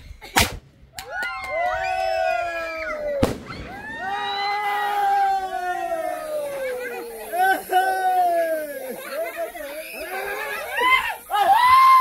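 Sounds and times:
firework bangs: 0:03.1 - 0:04.8.

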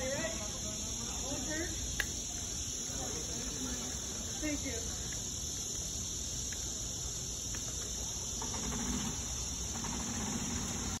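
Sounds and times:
insect chorus drone: 0:00.0 - 0:11.0.

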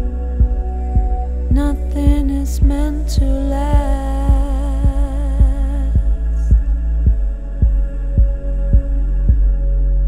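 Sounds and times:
bass and synth pad: 0:00.0 - 0:10.0
soft deep electronic beat: 0:00.0 - 0:10.0.

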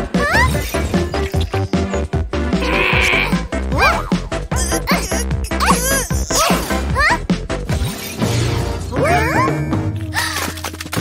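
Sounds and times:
cartoon background music: 0:00.0 - 0:11.0
wavering bleat-like vocal noise: 0:02.6 - 0:03.9.

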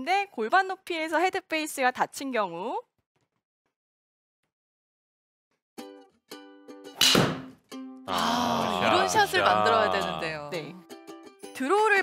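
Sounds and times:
plucked-string background music: 0:05.8 - 0:12.0.

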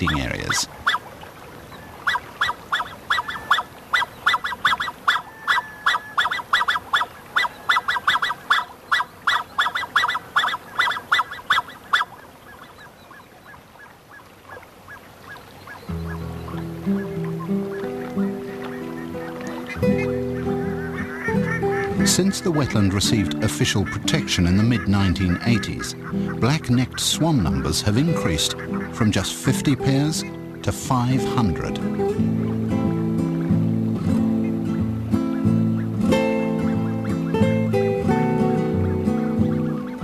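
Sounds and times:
swans calling: 0:00.0 - 0:40.0
background music with low notes: 0:15.9 - 0:40.0.

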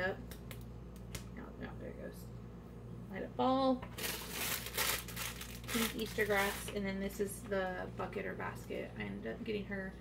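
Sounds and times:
plastic packaging crinkling: 0:03.9 - 0:06.8.

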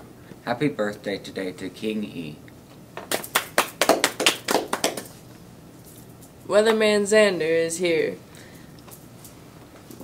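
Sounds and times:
hands clapping: 0:03.0 - 0:05.2.

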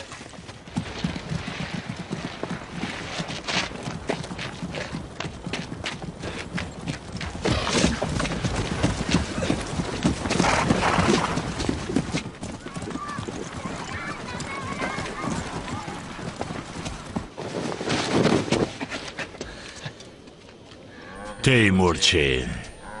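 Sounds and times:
hooves clattering: 0:00.0 - 0:20.9
voices calling out: 0:12.6 - 0:16.4, 0:20.8 - 0:23.0.

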